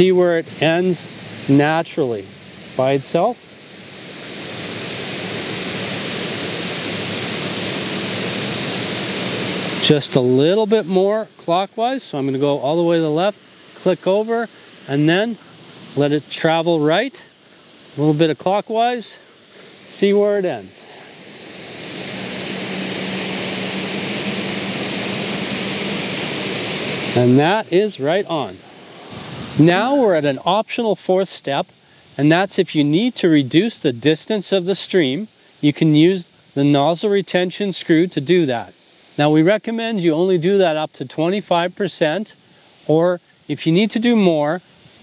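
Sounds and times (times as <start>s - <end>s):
steady low hum: 0.0s - 35.6s
sprinkler water stream hissing: 0.0s - 45.0s.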